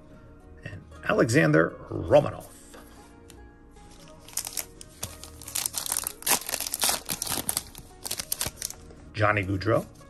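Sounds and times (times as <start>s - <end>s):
foil wrapper crinkling and tearing: 4.0s - 8.8s.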